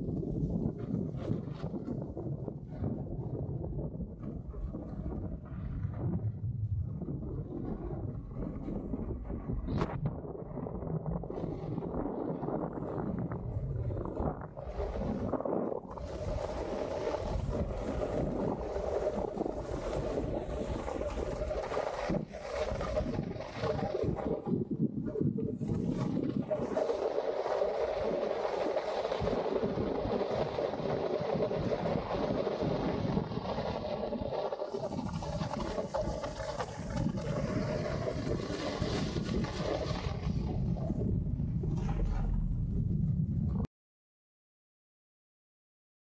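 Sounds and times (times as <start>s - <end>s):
snowboard scraping over snow: 0.0s - 42.9s
wind rumbling on microphone: 0.0s - 43.7s.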